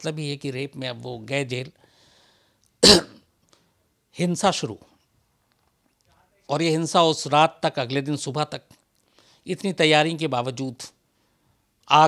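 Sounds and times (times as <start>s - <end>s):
man clearing throat: 2.8s - 3.2s.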